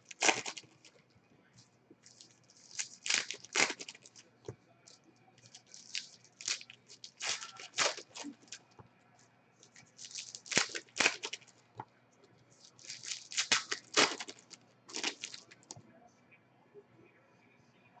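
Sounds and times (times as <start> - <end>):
trading cards rustling and slapping: 0.0 - 1.0, 2.0 - 4.2, 5.4 - 8.7, 9.6 - 11.5, 12.6 - 15.8.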